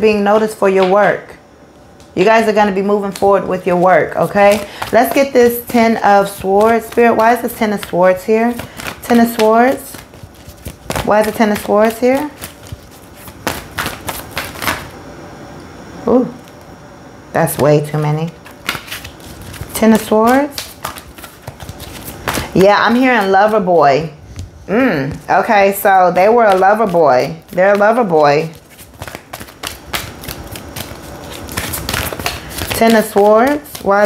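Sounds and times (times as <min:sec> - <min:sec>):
cards being shuffled: 0:03.0 - 0:14.9, 0:18.4 - 0:23.6, 0:25.9 - 0:34.0.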